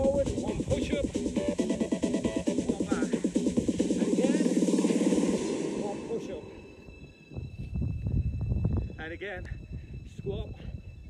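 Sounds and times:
wind buffeting microphone: 0:00.0 - 0:01.4, 0:06.9 - 0:11.0
electronic dance music: 0:00.0 - 0:06.9.

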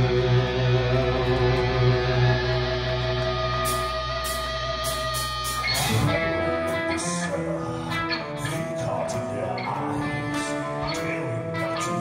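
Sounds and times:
bass guitar: 0:00.0 - 0:12.0
drums: 0:00.0 - 0:12.0
electric guitars: 0:00.0 - 0:12.0.

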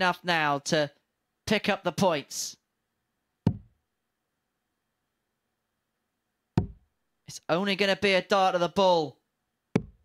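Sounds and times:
darts striking dartboard: 0:03.5 - 0:03.7, 0:06.6 - 0:06.8, 0:09.8 - 0:10.0.

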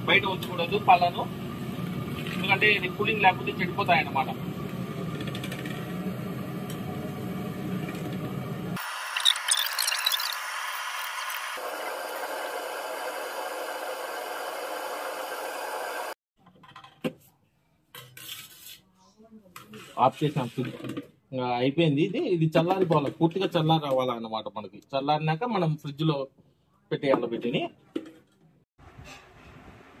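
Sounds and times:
gas burner hissing: 0:00.0 - 0:09.2, 0:10.2 - 0:16.2.

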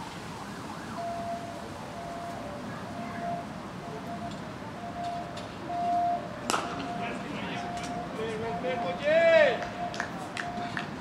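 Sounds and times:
distant siren wailing: 0:00.0 - 0:11.0
outdoor background noise: 0:00.0 - 0:11.0.

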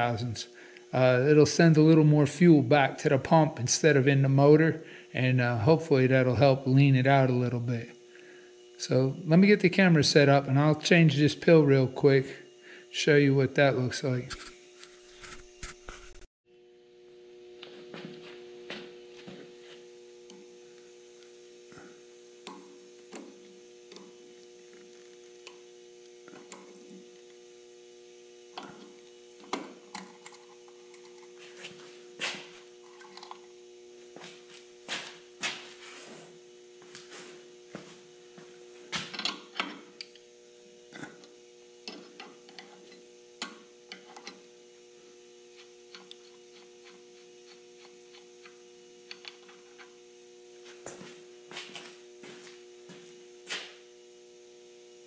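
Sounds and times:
steady electrical hum: 0:00.0 - 0:55.0.

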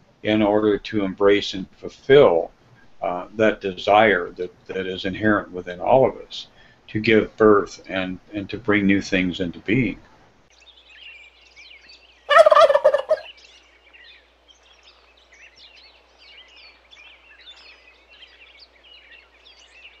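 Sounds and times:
turkey gobbling: 0:12.3 - 0:13.3.

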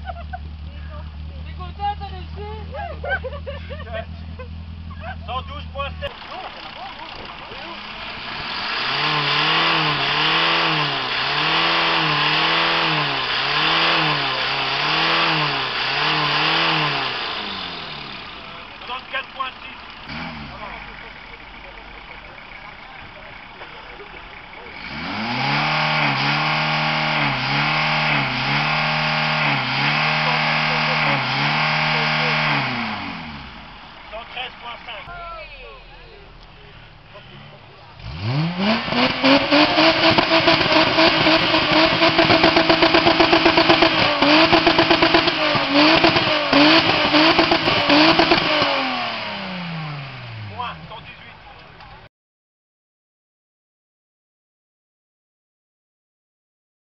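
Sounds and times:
car engines revving hard: 0:00.0 - 0:52.0.

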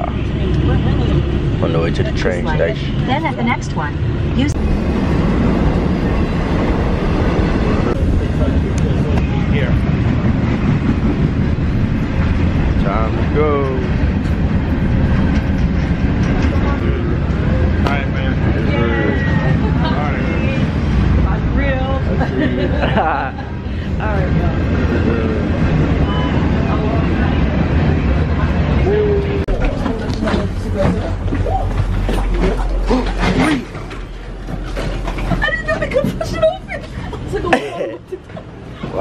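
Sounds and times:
train rumbling: 0:00.0 - 0:39.0.

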